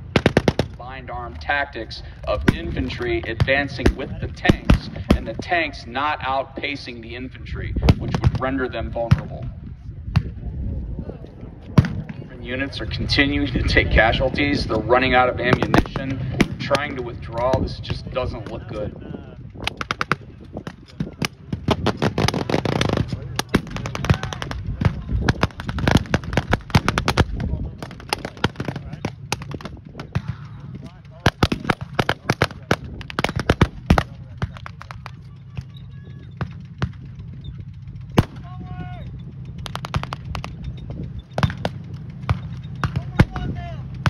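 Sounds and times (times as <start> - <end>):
rifle and machine-gun shots: 0.0 - 1.0, 2.3 - 5.4, 15.4 - 17.6, 19.6 - 30.5, 31.1 - 35.1, 39.6 - 40.5, 41.4 - 43.4
tank engines running: 0.0 - 44.0.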